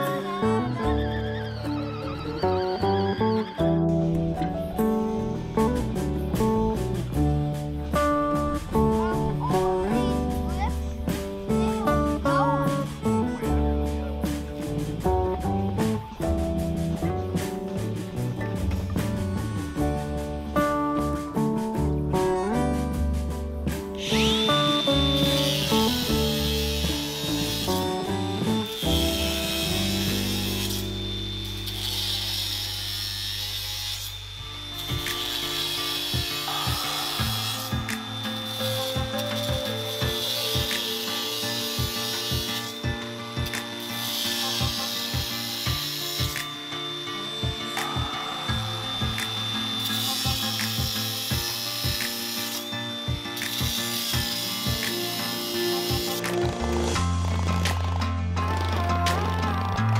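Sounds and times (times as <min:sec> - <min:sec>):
music with steady beat: 0:03.6 - 0:31.7, 0:34.4 - 0:59.9
cordless drill boring into wood: 0:24.0 - 0:56.3.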